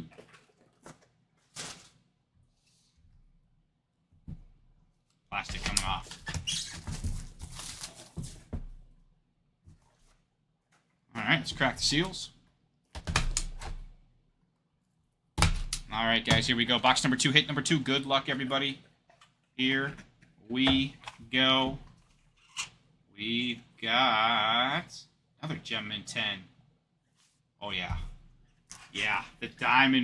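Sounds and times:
man speaking: 5.3s - 6.1s, 11.1s - 12.4s, 15.9s - 18.8s, 19.6s - 21.8s, 23.1s - 26.6s, 27.6s - 28.1s, 28.8s - 30.0s.

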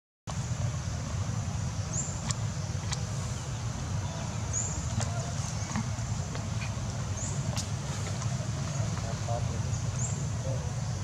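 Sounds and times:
constant low rumble: 0.3s - 11.0s
high insect drone: 0.3s - 11.0s.

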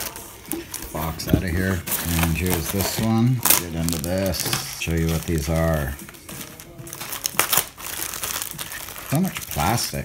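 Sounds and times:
faint music: 0.0s - 10.0s
plastic bag crinkling: 0.0s - 10.0s.

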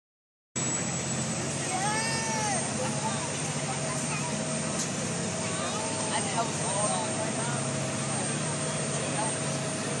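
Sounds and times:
ferry engine drone: 0.6s - 10.0s.

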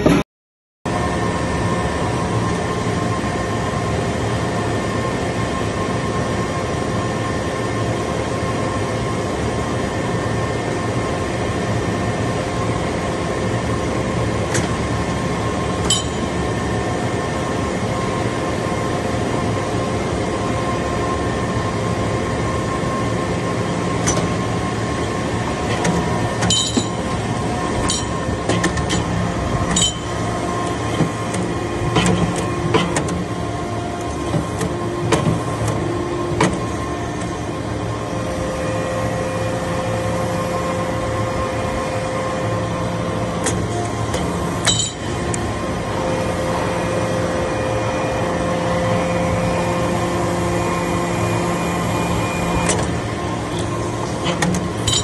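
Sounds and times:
higher pressure whine: 0.9s - 55.0s
hydraulic unit humming: 0.9s - 55.0s.

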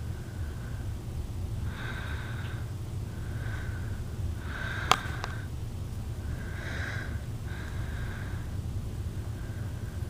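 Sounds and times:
cat breathing and sniffing: 0.0s - 10.0s
steady low rumble: 0.0s - 10.0s.

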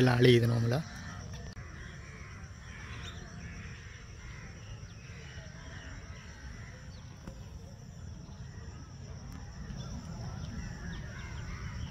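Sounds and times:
birds calling: 0.0s - 11.9s.

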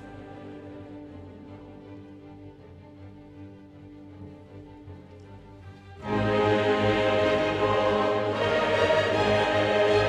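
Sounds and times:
orchestra playing: 0.0s - 10.0s.

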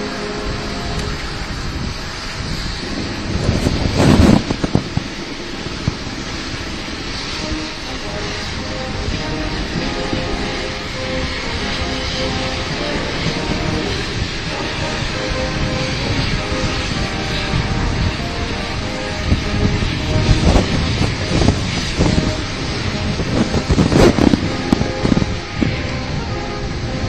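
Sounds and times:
military band playing anthem: 0.0s - 1.5s, 6.6s - 27.0s
rain: 0.0s - 27.0s
wind noise on microphone: 0.0s - 27.0s.

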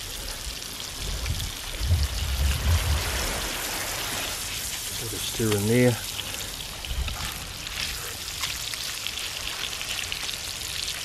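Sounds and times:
fish sizzling in butter: 0.0s - 11.0s.

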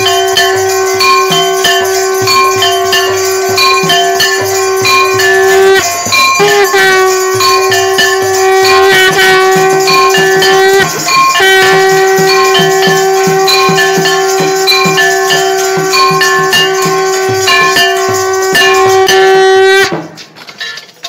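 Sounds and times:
held drone note: 0.0s - 20.0s
melody line: 0.0s - 20.0s
bell and rattle strokes: 0.0s - 21.0s.

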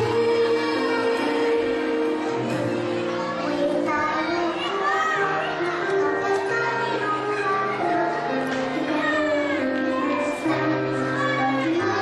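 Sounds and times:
children singing: 0.0s - 12.0s
instrumental backing music: 0.0s - 12.0s.

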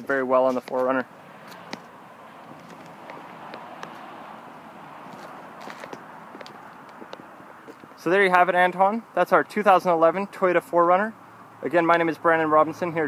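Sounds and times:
footsteps on pavement: 0.0s - 8.0s.

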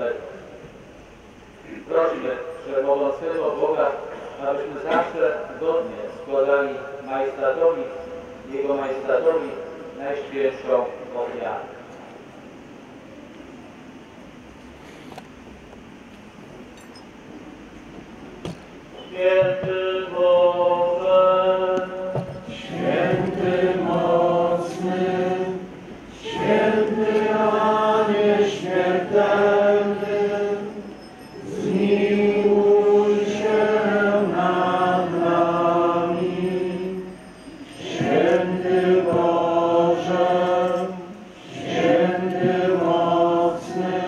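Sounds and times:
congregation singing a hymn: 1.6s - 10.4s, 19.1s - 44.0s.

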